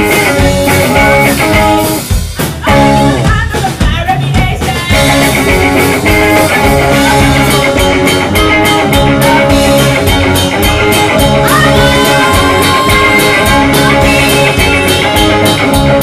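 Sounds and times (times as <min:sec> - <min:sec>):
rock band playing: 0:00.0 - 0:16.0
woman singing into a microphone: 0:11.2 - 0:15.6.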